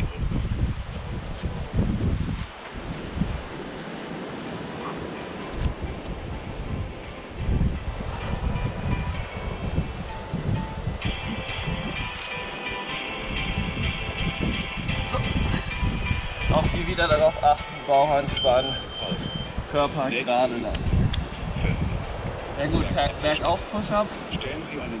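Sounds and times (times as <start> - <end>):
wind buffeting microphone: 0.0 - 25.0
background music: 5.0 - 25.0.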